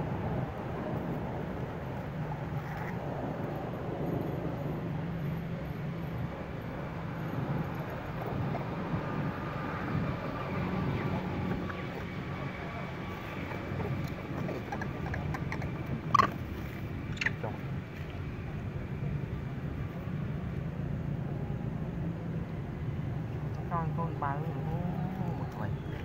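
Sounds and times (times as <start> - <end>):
low outdoor rumble: 0.0 - 26.0.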